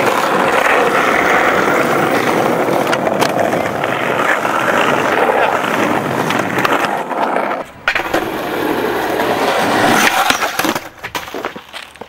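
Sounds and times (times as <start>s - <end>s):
skateboard clattering and impacts: 0.0s - 12.0s
skateboard wheels rolling on asphalt: 0.0s - 12.0s.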